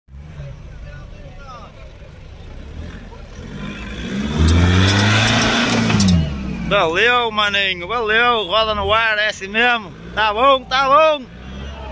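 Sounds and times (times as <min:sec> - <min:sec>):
truck engine revving: 0:00.1 - 0:11.9.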